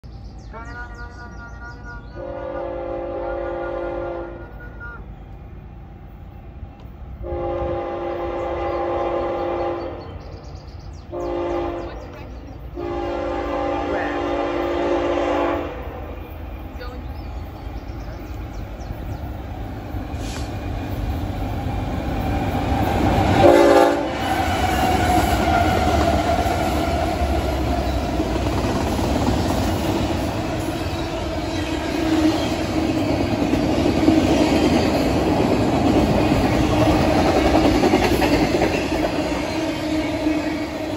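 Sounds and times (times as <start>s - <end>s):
locomotive horn blasts: 1.8s - 5.1s, 7.2s - 10.0s, 11.1s - 12.0s, 12.8s - 16.0s, 23.4s - 26.0s
train wheels rumbling and clattering: 10.0s - 40.9s.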